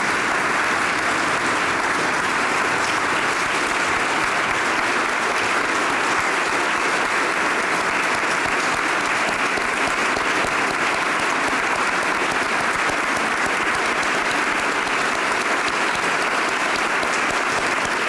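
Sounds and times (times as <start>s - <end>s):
crowd applauding: 0.0s - 18.0s.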